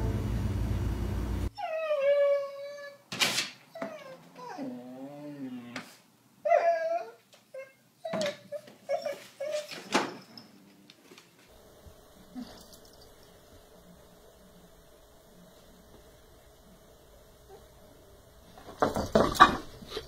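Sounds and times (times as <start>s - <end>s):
dog whining and whimpering: 1.5s - 3.0s, 3.7s - 5.7s, 6.4s - 10.5s.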